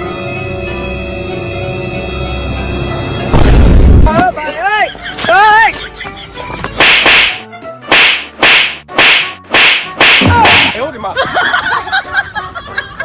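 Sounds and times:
whip-like swishing hits: 0:06.7 - 0:10.9.

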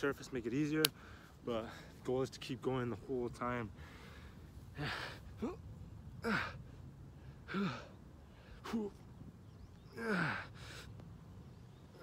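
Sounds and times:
strained breathing: 0:03.8 - 0:05.5
man grunting with effort: 0:04.8 - 0:06.6, 0:09.9 - 0:10.5.

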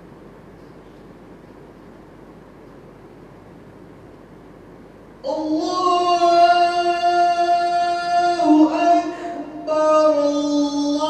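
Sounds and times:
solo voice singing long note: 0:05.2 - 0:11.0.

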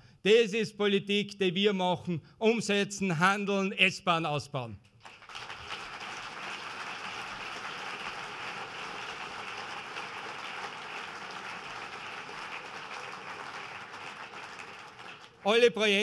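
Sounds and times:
audience applauding: 0:05.0 - 0:16.0.

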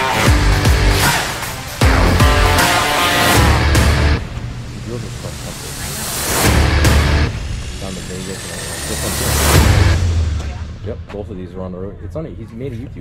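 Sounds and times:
loud bass-heavy music: 0:00.0 - 0:10.8
people talking: 0:04.8 - 0:06.3, 0:07.8 - 0:09.6, 0:10.4 - 0:13.0.

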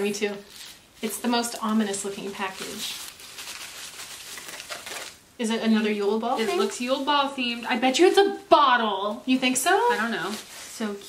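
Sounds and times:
bubble wrap rustling and crinkling: 0:00.0 - 0:11.0.

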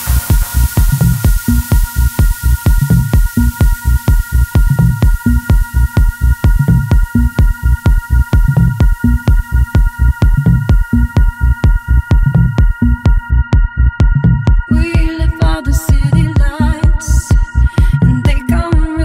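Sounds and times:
kick drum beat: 0:00.0 - 0:19.0
repeating bass line: 0:00.0 - 0:19.0.

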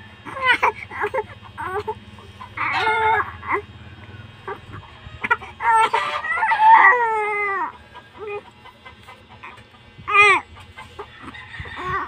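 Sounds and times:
newborn baby crying: 0:00.3 - 0:02.0, 0:02.6 - 0:03.7, 0:04.4 - 0:08.4, 0:10.1 - 0:10.4.

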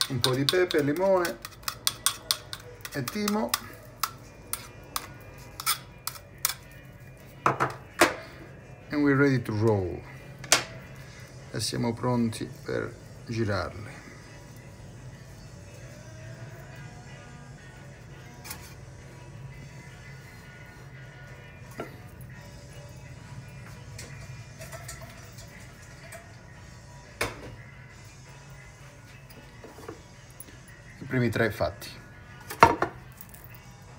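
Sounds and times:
quiet background music: 0:00.0 - 0:33.9.

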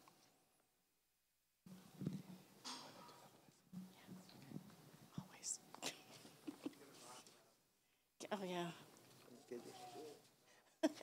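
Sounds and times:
people whispering: 0:03.0 - 0:05.6, 0:08.6 - 0:10.3.

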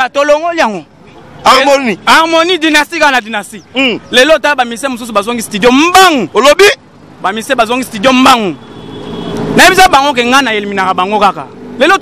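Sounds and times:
man speaking excitedly: 0:00.0 - 0:08.6, 0:09.5 - 0:12.0.

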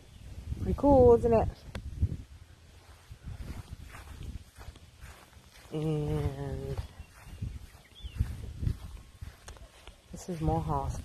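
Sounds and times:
footsteps on grass: 0:00.2 - 0:11.0.

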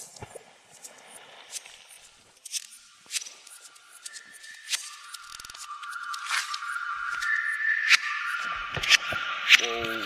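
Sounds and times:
sharp clicks: 0:02.4 - 0:08.0.

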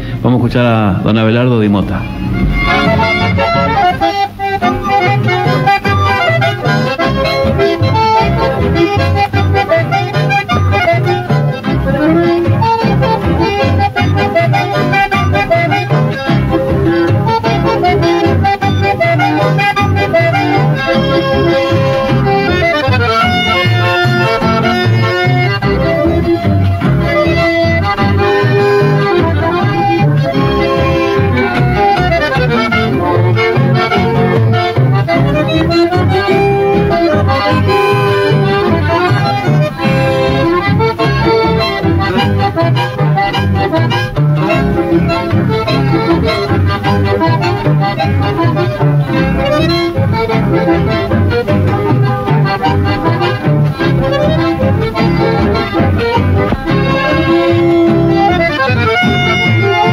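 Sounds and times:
accordion-led folk music: 0:00.0 - 0:59.9.

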